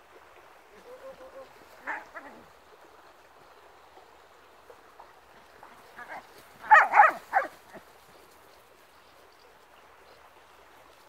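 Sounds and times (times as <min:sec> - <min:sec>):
dog barking: 0:06.6 - 0:07.5.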